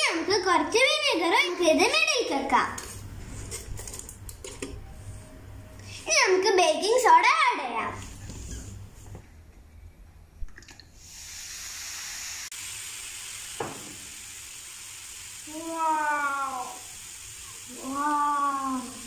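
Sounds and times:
child exclaiming: 0:00.0 - 0:02.7, 0:15.4 - 0:16.9, 0:17.7 - 0:19.0
baking soda volcano fizzing: 0:11.0 - 0:19.0.

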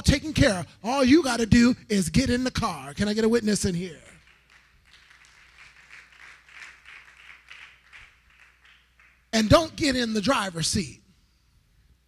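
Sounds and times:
congregation clapping: 0:03.9 - 0:10.4.

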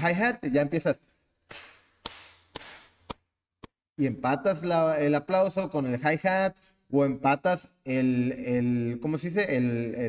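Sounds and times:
man mouthing hi-hat sounds: 0:01.4 - 0:03.3.

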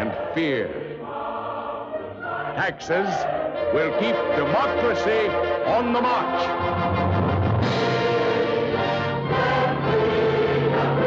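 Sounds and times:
choir singing held notes: 0:00.0 - 0:11.0
orchestral accompaniment: 0:02.2 - 0:11.0.

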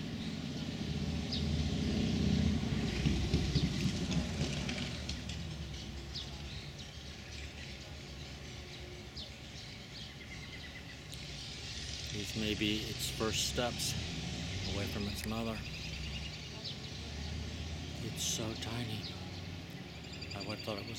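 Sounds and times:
songbird chirps: 0:05.0 - 0:20.9.

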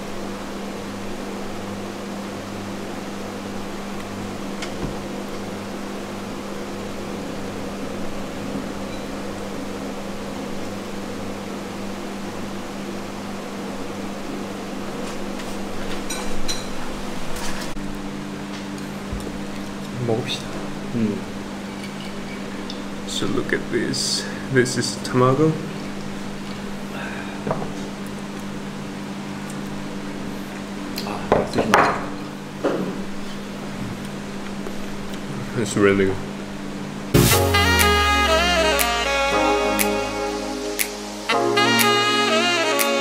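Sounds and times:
low mechanical hum: 0:00.0 - 0:37.2.

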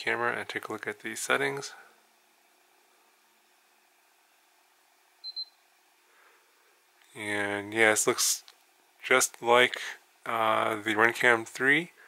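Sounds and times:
high electronic beeps: 0:05.2 - 0:05.6.

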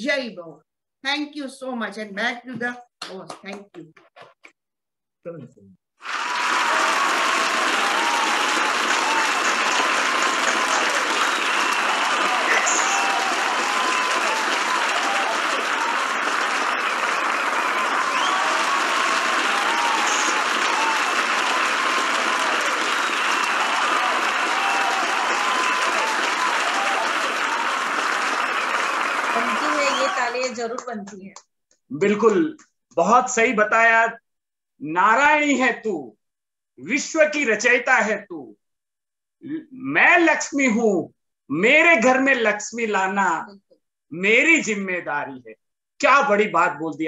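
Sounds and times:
crowd applauding: 0:06.0 - 0:31.2.

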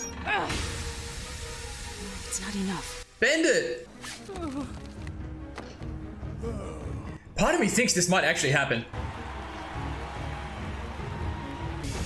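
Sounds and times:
man whimpering: 0:06.4 - 0:07.2.

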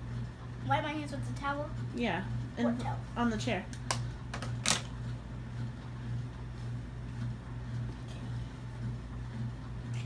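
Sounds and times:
steady low hum: 0:00.0 - 0:10.0
makeup items clicking on vanity: 0:03.7 - 0:04.9.

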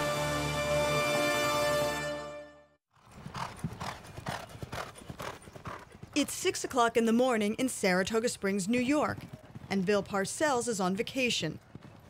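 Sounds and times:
theme music: 0:00.0 - 0:02.8
horse hoofbeats on dirt: 0:03.0 - 0:12.0.

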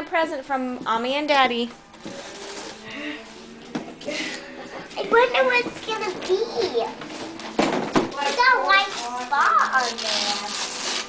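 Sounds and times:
wrapping paper rustling: 0:02.0 - 0:02.9, 0:06.6 - 0:11.0.

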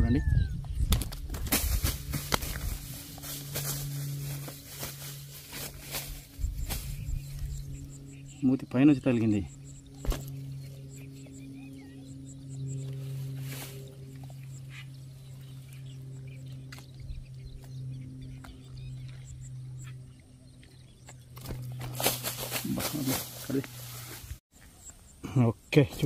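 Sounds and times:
low motor hum: 0:00.0 - 0:25.2
rustling and handling noise: 0:01.0 - 0:07.4, 0:21.4 - 0:24.4.

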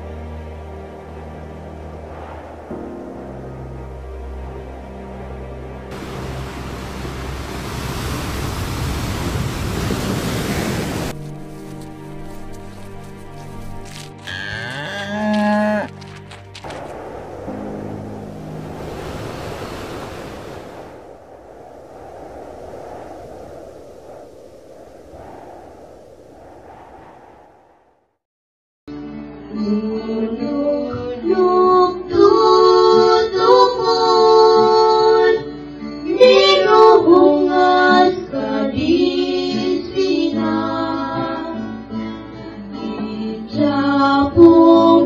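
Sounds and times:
soft ambient music: 0:00.0 - 0:09.1, 0:11.1 - 0:20.7
surf washing: 0:01.0 - 0:04.4, 0:05.9 - 0:27.4
cow lowing: 0:11.2 - 0:16.3.

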